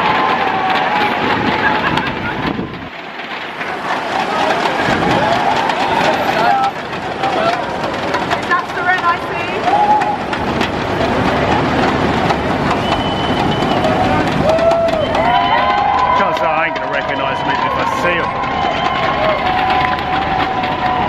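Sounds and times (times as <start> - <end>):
crowd shouting and cheering: 0.0 - 21.0
vehicle engine and tyre noise: 0.0 - 21.0.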